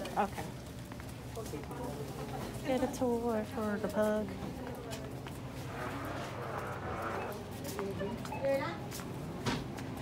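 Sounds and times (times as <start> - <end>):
indistinct chatter: 1.2 - 9.0.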